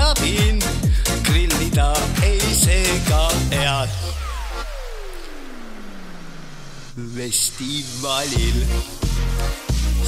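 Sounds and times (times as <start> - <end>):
tone sweeping downward: 3.5 - 9.1.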